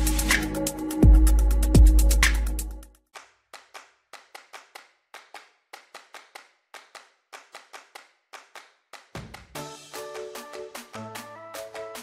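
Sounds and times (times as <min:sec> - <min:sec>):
sharp clap-like percussion hits: 0:00.0 - 0:00.6, 0:01.8 - 0:12.0.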